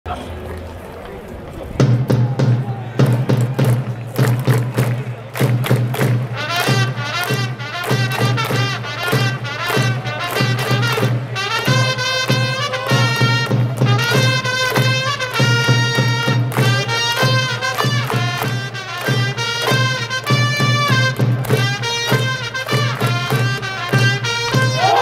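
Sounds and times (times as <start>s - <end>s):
drum beat: 1.8s - 25.0s
brass melody: 6.2s - 25.0s.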